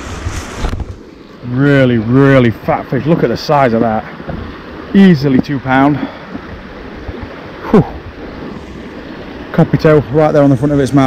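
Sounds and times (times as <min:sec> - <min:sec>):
river water rushing: 0:00.0 - 0:11.0.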